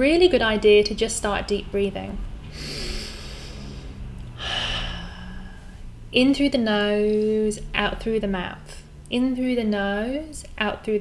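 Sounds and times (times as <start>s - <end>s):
woman breathing slowly: 2.4s - 6.0s.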